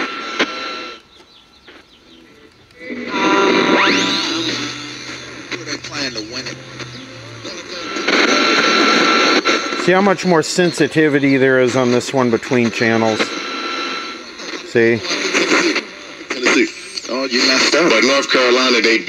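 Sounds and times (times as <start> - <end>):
radio static and hiss: 0.0 - 19.0
broadcast music: 0.7 - 17.4
rising radio squeal: 2.2 - 17.0
broadcast voice: 5.2 - 13.5, 14.6 - 15.2.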